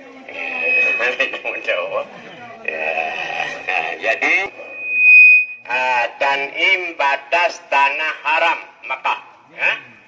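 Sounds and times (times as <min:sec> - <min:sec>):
megaphone feedback whistle: 0:00.3 - 0:02.0, 0:04.4 - 0:05.8.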